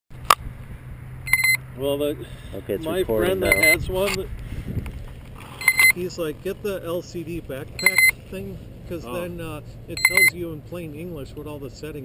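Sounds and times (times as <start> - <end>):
short high electronic beeps: 1.3 - 1.6, 3.4 - 3.8, 5.6 - 6.0, 7.8 - 8.1, 10.0 - 10.3.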